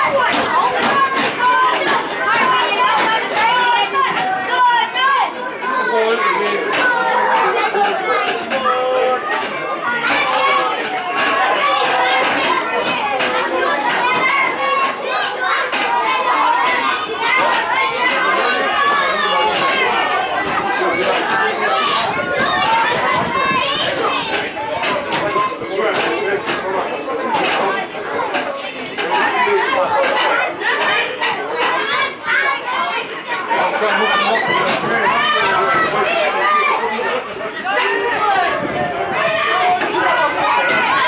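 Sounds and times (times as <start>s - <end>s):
people chattering: 0.0s - 41.0s
people shouting and calling: 0.0s - 41.0s.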